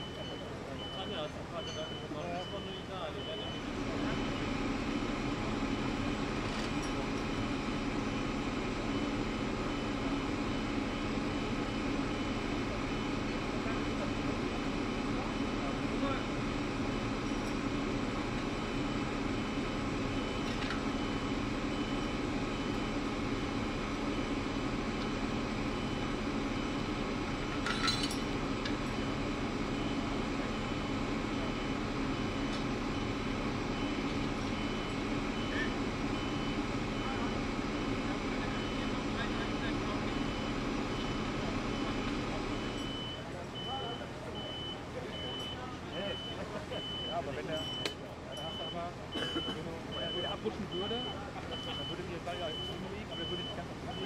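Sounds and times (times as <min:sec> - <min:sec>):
vehicle warning beeper: 0:00.0 - 0:16.3, 0:17.3 - 0:54.0
large diesel engine running: 0:00.0 - 0:54.0.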